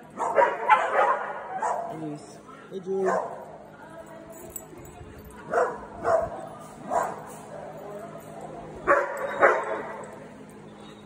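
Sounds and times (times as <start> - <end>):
small dogs barking: 0.1 - 2.0, 5.5 - 7.6, 8.8 - 10.1.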